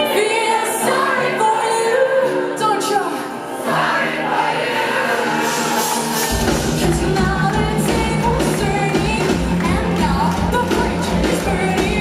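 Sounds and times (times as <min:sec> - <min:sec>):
woman singing lead vocals: 0:00.0 - 0:03.7, 0:06.4 - 0:12.0
audience singing along: 0:00.0 - 0:12.0
live pop-punk band playing: 0:04.4 - 0:12.0.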